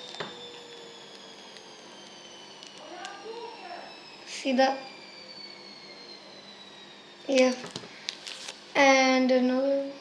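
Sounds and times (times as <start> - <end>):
foil card pack handling: 7.7 - 8.6.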